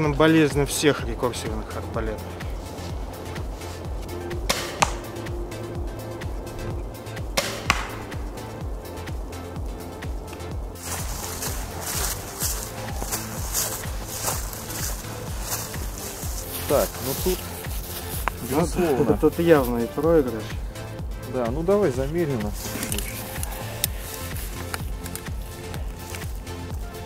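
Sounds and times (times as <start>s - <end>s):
background music with steady beat: 0.0s - 27.0s
rustling hiss: 1.8s - 20.0s, 22.3s - 26.9s
crossbow shooting cracks: 4.5s - 5.1s, 7.4s - 8.3s.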